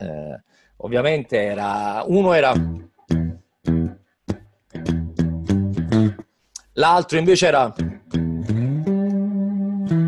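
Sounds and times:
electric guitar picked notes: 0:02.5 - 0:06.2, 0:07.8 - 0:10.0.

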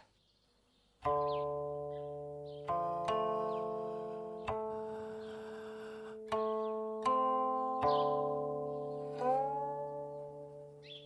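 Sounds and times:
zither notes plucked: 0:01.0 - 0:11.0.

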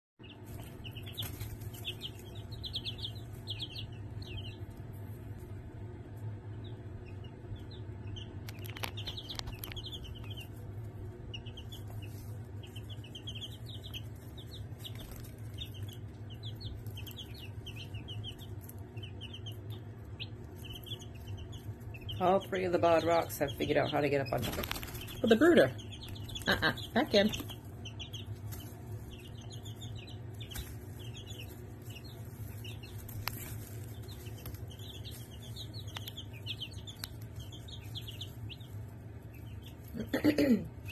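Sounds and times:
chicks peeping: 0:00.2 - 0:40.9
steady low hum: 0:00.2 - 0:40.9.

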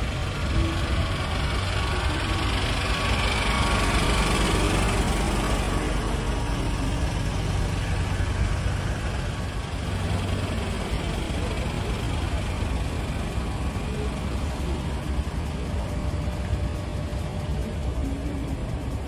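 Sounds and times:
diesel truck engine idling: 0:00.0 - 0:19.0.

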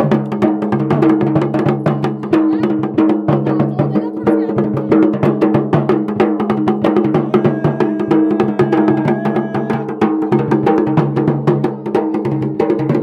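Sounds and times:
drums in fast driving rhythm: 0:00.0 - 0:13.0.

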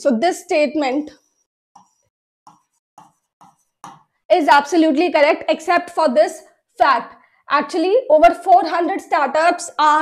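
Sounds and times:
woman speaking: 0:00.0 - 0:01.2, 0:04.3 - 0:10.0
stylus tapping on screen: 0:01.8 - 0:04.2.

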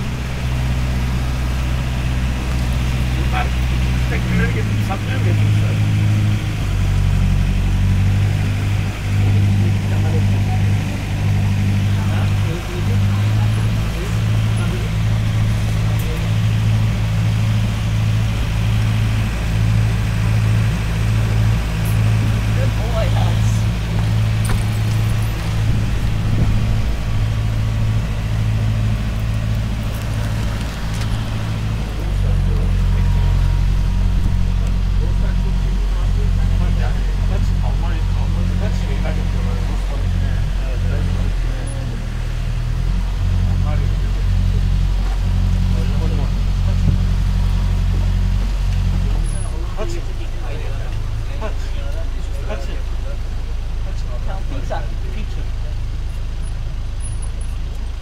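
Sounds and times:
large vehicle engine humming: 0:00.0 - 0:58.0.

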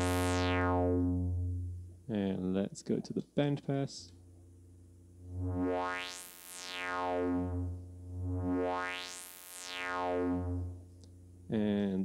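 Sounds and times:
filtered synthesizer tone sweeping: 0:00.0 - 0:01.9, 0:05.2 - 0:10.9.

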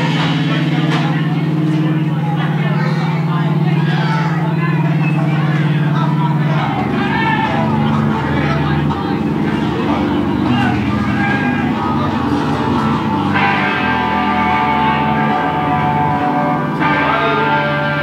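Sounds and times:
drums: 0:00.0 - 0:18.0
guitar and bass chords: 0:00.0 - 0:18.0.

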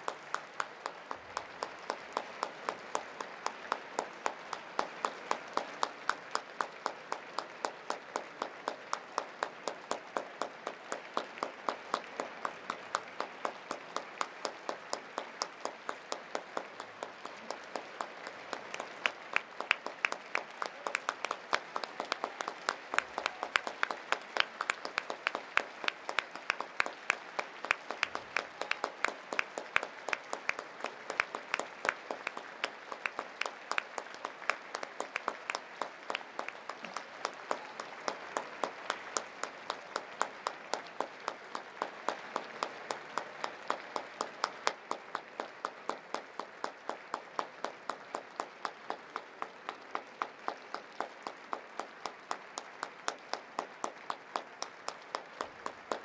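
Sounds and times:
audience applauding: 0:00.0 - 0:56.0
sharp claps close to microphone: 0:00.0 - 0:56.0.

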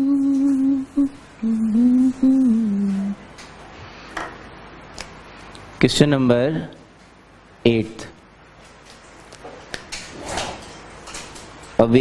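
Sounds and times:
man humming a tune: 0:00.0 - 0:03.3.

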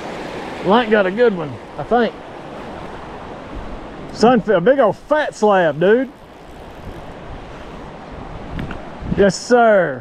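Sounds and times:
river rushing over rocks: 0:00.0 - 0:09.1.

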